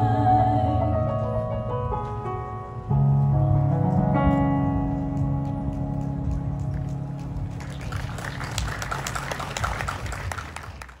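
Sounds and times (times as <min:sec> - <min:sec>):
audience clapping: 0:05.4 - 0:11.0.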